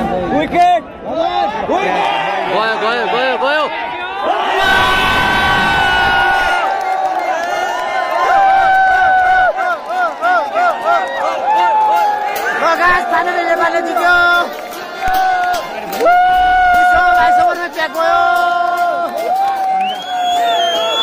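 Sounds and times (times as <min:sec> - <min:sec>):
stadium crowd cheering and shouting: 0:00.0 - 0:21.0.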